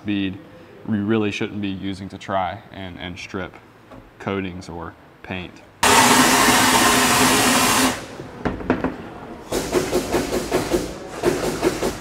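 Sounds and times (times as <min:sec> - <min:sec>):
blasting gun rushing hiss: 0:05.8 - 0:08.1.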